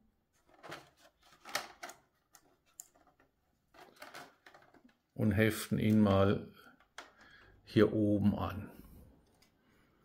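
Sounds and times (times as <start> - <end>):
plastic part clicking and scraping: 0.4 - 5.0.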